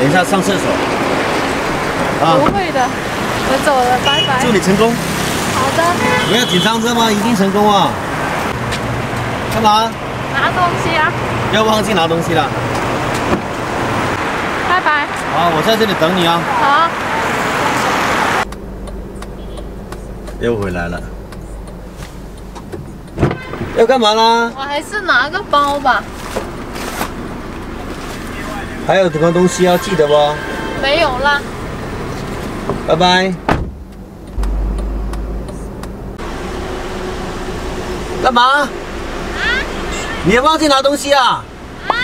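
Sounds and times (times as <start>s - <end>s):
street traffic: 0.0s - 42.0s
low hum inside a car: 34.1s - 37.2s.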